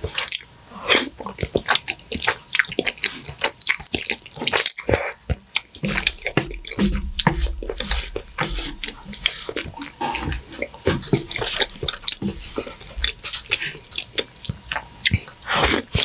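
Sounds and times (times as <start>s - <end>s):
wet chewing and lip-smacking: 0.0s - 16.0s
chopsticks squelching through noodles: 0.2s - 16.0s.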